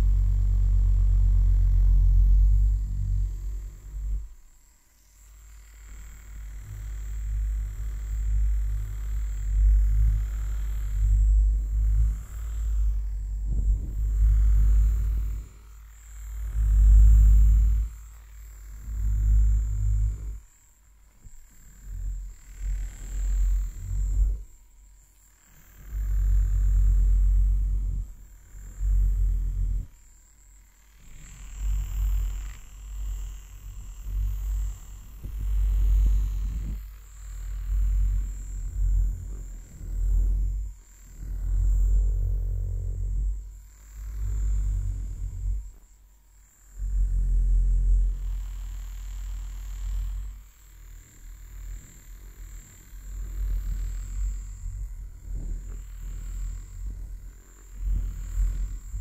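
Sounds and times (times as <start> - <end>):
facial brush buzzing on microphone: 0.0 - 59.0.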